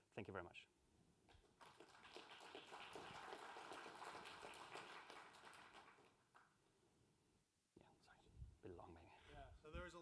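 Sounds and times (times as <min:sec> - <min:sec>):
audience applauding: 0:01.6 - 0:06.5.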